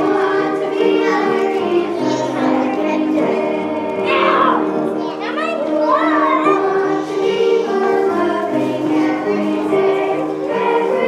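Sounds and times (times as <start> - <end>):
group singing: 0.0 - 4.9, 6.4 - 11.0
instrumental accompaniment: 0.0 - 11.0.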